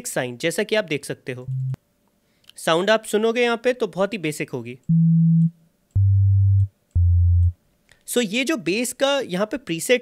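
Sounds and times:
sine wave bass notes: 0:01.5 - 0:01.8, 0:04.9 - 0:07.6.

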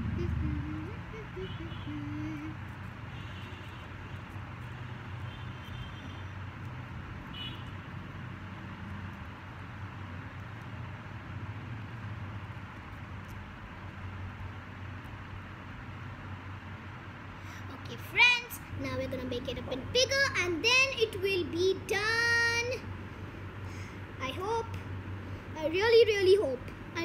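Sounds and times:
low mechanical hum and rumble: 0:00.0 - 0:27.0.

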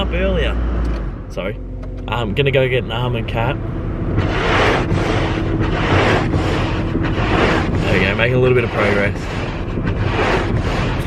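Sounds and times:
heater fan blowing air: 0:00.0 - 0:11.0
low hum: 0:00.0 - 0:11.0.

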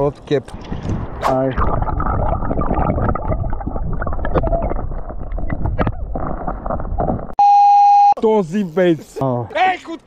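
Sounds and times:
bubbles clicking: 0:01.5 - 0:05.8.

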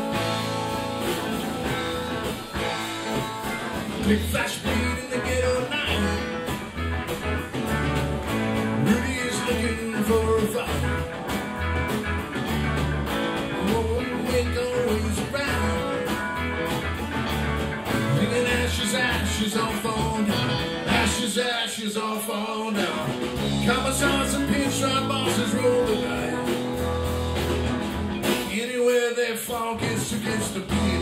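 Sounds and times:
drums with cymbals: 0:00.0 - 0:21.2, 0:22.8 - 0:28.7, 0:30.1 - 0:31.0
pulsing bass line: 0:00.0 - 0:21.2, 0:23.2 - 0:28.4
electric guitars: 0:00.0 - 0:31.0.

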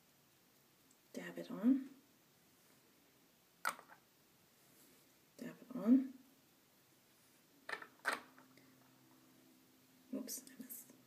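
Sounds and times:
person whispering: 0:01.1 - 0:01.9, 0:10.1 - 0:11.0.

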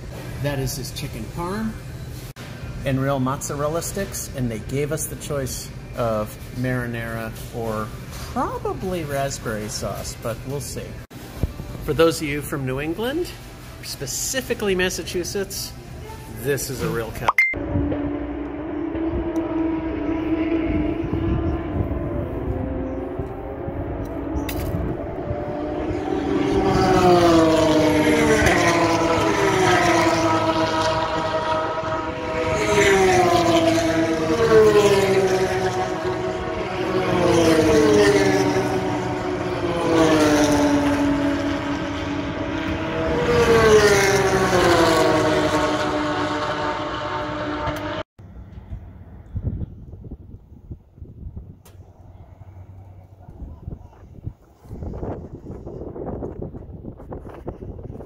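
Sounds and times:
steady engine drone: 0:14.9 - 0:50.0, 0:51.5 - 0:58.0
race cars passing by: 0:16.4 - 0:49.2.

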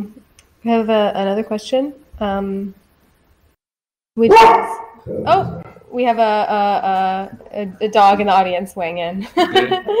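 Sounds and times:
dog barking: 0:04.2 - 0:05.0.

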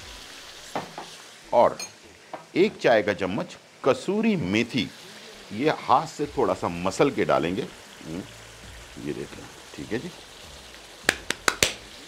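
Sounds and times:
curry sizzling in a frying pan: 0:00.0 - 0:12.0.

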